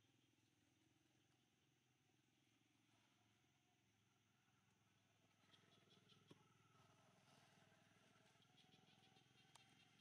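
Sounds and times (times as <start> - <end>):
faint buzz of insects: 0.0 - 10.0.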